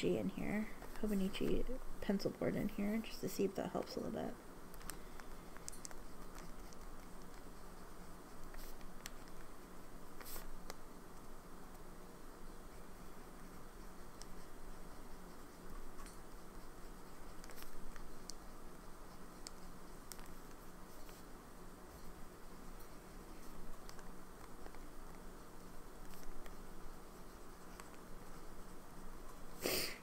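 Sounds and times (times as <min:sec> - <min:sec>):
pen nib scratching paper: 0:05.6 - 0:10.8, 0:12.7 - 0:21.3, 0:26.0 - 0:29.6.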